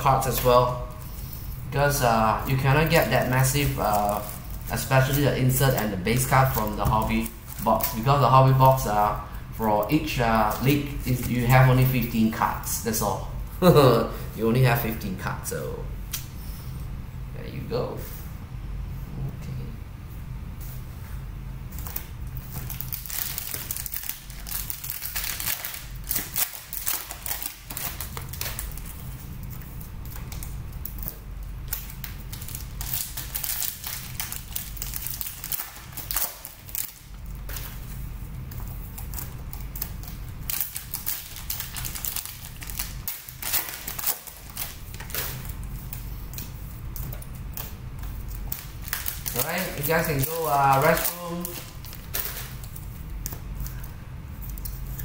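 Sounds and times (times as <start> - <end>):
plastic wrappers crinkling: 0.0 - 13.8, 21.6 - 55.0
steady low hum: 0.0 - 55.0.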